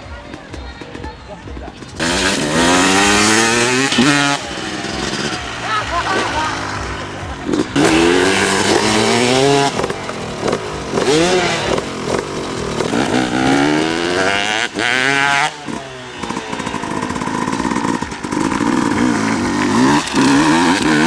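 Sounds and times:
motocross bike engine revving: 0:01.6 - 0:21.0.

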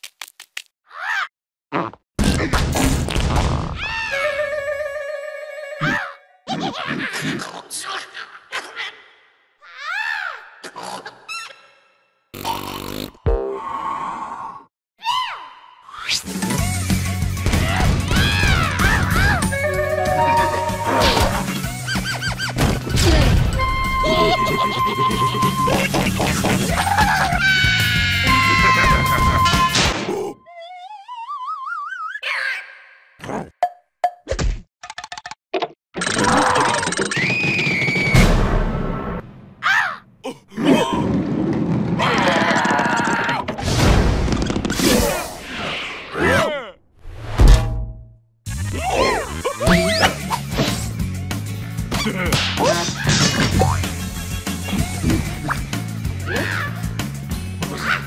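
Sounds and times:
high whistling tone: 0:19.6 - 0:21.3, 0:23.5 - 0:26.0, 0:29.1 - 0:29.8
cartoon vocal glide: 0:19.6 - 0:21.4, 0:48.7 - 0:50.2
cartoon thud: 0:37.8 - 0:39.0, 0:47.2 - 0:48.2.

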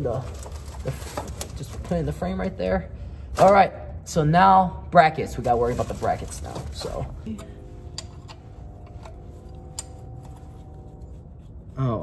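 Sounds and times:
faint steady hum: 0:06.4 - 0:12.0.

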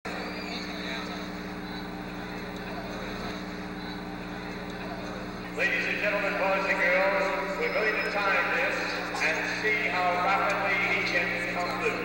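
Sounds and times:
electrical hum: 0:00.1 - 0:12.0
faint murmur of voices: 0:00.1 - 0:12.0.

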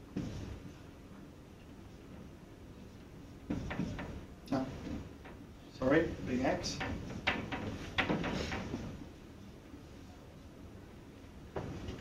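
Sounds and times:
marker scraping on whiteboard: 0:03.5 - 0:05.1.

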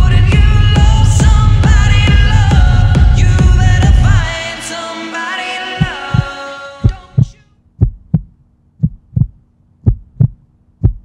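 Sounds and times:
heartbeat thumps: 0:00.0 - 0:04.3, 0:05.8 - 0:11.0
person singing: 0:00.0 - 0:07.6.

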